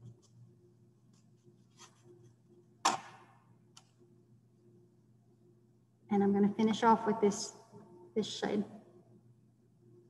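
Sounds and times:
low steady hum: 0:00.0 - 0:10.0
sharp knock: 0:02.8 - 0:03.4.

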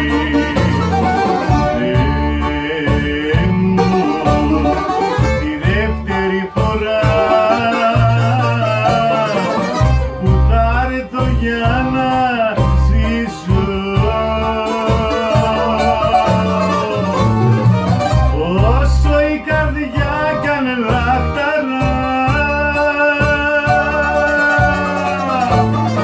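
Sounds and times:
bouzoukis playing melody: 0:00.0 - 0:10.8, 0:11.8 - 0:26.0
keyboard bass and chords: 0:00.0 - 0:26.0.

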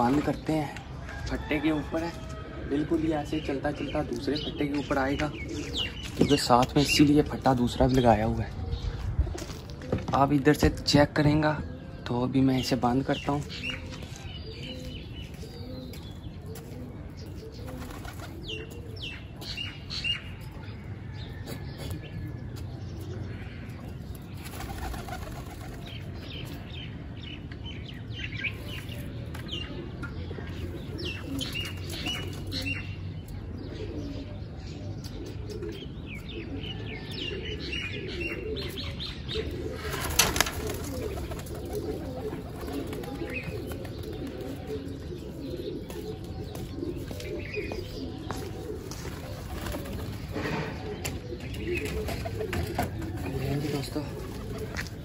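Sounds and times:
pigeons cooing: 0:00.0 - 0:55.0
wings flapping: 0:17.6 - 0:18.4, 0:24.4 - 0:26.1, 0:39.9 - 0:44.6.

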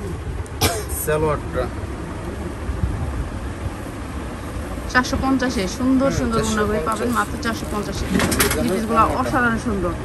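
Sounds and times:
busy shop background rumble: 0:00.0 - 0:10.0.

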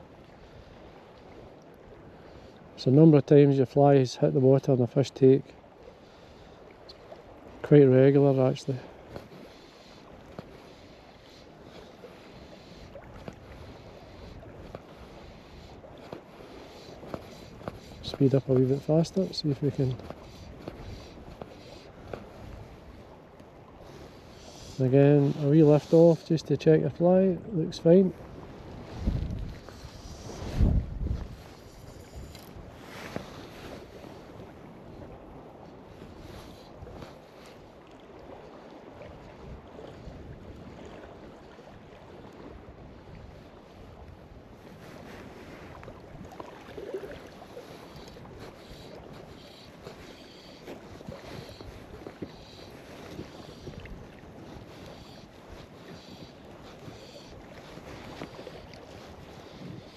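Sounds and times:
small choppy waves: 0:00.0 - 0:59.9
wind buffeting microphone: 0:27.2 - 0:37.2.

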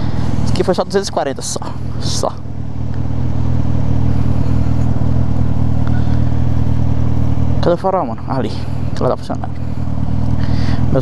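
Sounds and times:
motorcycle engine loud exhaust: 0:00.0 - 0:11.0.

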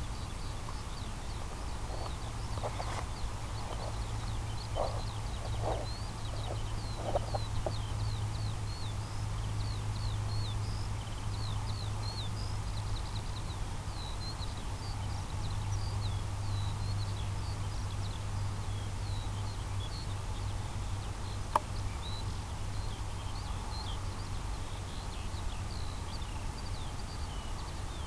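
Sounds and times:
birds chirping: 0:00.0 - 0:28.0
continuous low hum: 0:00.0 - 0:28.0.

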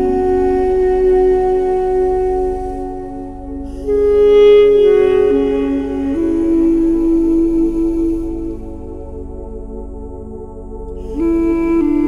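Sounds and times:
duduk playing slow melody: 0:00.0 - 0:09.4, 0:10.9 - 0:12.0.

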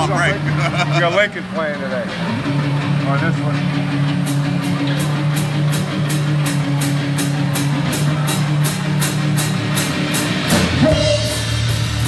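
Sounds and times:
electric guitar chords: 0:00.0 - 0:12.0
rock band playing: 0:00.0 - 0:12.0
cymbal struck on beat: 0:08.4 - 0:12.0.

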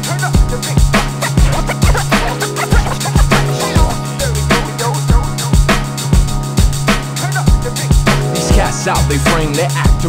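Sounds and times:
hip-hop instrumental beat: 0:00.0 - 0:10.0
steady kick drum: 0:00.4 - 0:06.9
turntable scratching: 0:00.8 - 0:05.0.

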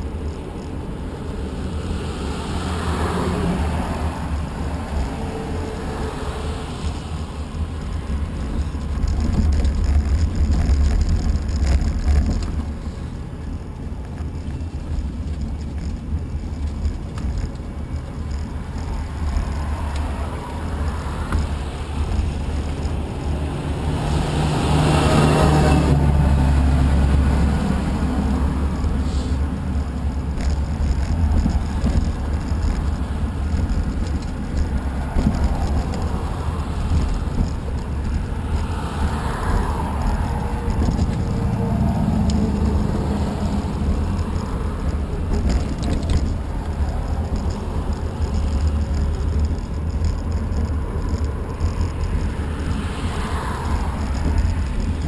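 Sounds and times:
cars passing: 0:00.0 - 0:55.0
wind rumble on microphone: 0:00.0 - 0:55.0.

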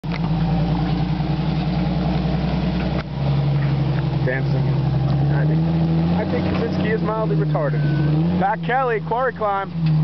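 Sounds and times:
car engine running at low revs: 0:00.0 - 0:10.0.

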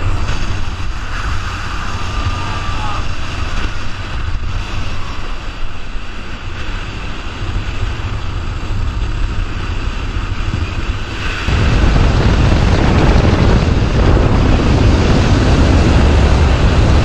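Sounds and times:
skateboard wheels rolling on asphalt: 0:00.0 - 0:17.0
wind buffeting microphone: 0:00.0 - 0:17.0.

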